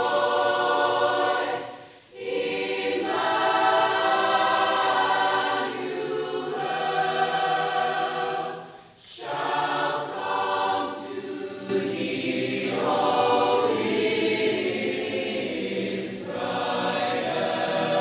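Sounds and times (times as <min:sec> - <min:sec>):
mixed choir singing: 0:00.0 - 0:18.0.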